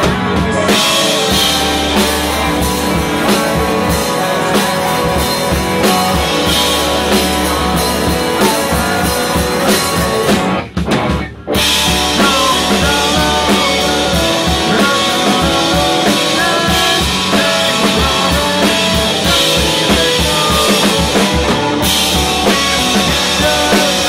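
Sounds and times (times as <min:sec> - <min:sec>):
man singing lead vocal: 0:00.0 - 0:10.5, 0:11.7 - 0:24.0
rock band playing: 0:00.0 - 0:24.0.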